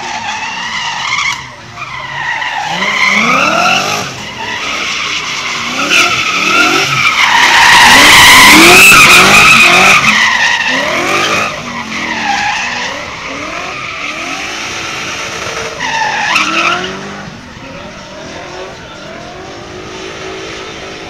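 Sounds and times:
car engine revving: 0.0 - 21.0
tyres squealing: 0.0 - 21.0.

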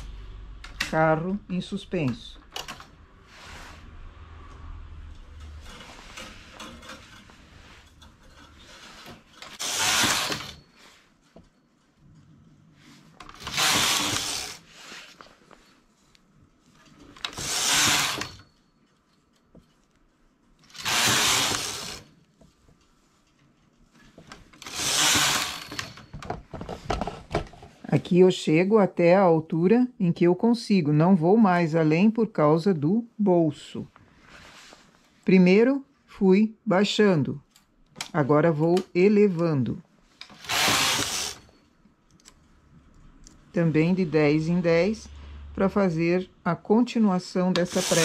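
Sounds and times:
knitting machine carriage sliding: 5.1 - 11.1, 12.8 - 15.6, 16.8 - 18.5, 20.6 - 22.2, 24.0 - 26.2, 40.2 - 41.6, 47.4 - 48.0.

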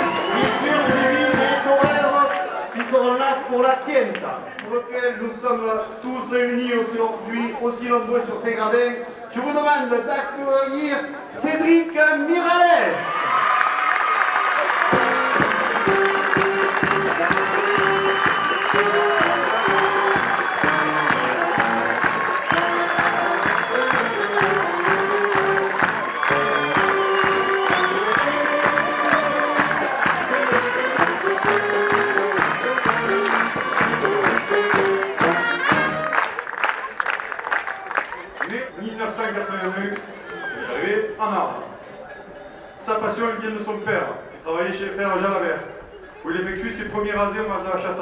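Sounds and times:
melodic music: 0.0 - 1.9, 14.9 - 36.2
crowd applauding: 0.0 - 3.5, 12.9 - 40.4.

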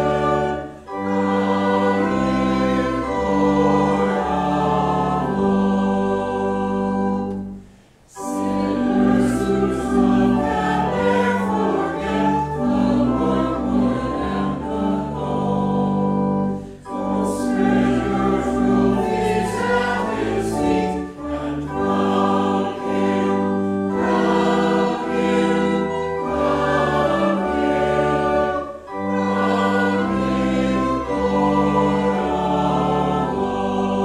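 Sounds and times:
church organ chords: 0.0 - 34.0
voices singing: 0.0 - 34.0.

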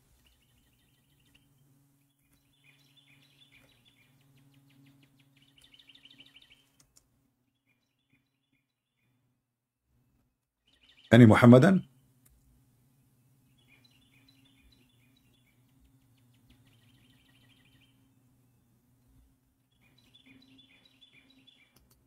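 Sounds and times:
faint rapid bird chirping: 0.0 - 22.0
low steady hum: 0.0 - 22.0.

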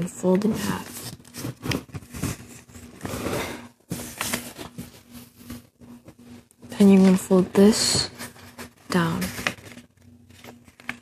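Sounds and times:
paper rustling and sliding: 0.4 - 6.2, 6.8 - 11.0.

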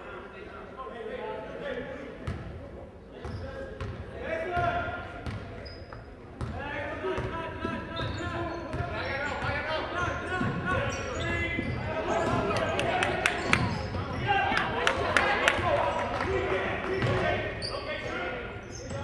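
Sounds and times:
voices of spectators and players: 0.0 - 19.0.

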